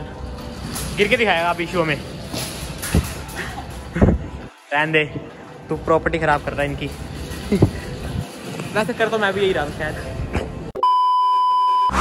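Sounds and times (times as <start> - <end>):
electronic beep: 10.8 - 12.0.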